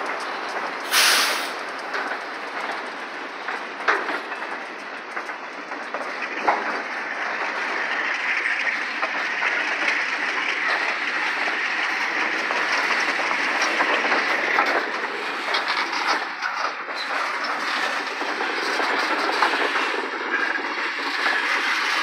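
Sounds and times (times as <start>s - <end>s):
clickety-clack of rail joints: 0.0s - 22.0s
freight train wheels on rails: 0.0s - 22.0s.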